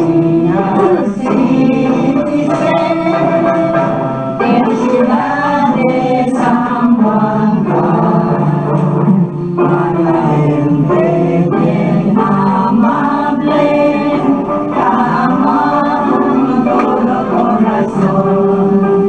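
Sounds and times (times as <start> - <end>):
choir singing with accompaniment: 0.0 - 19.0.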